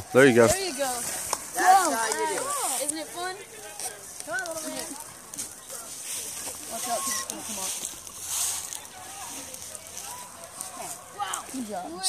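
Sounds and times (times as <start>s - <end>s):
rustling of dry leaves: 0.0s - 12.0s
distant children's voices: 0.6s - 12.0s.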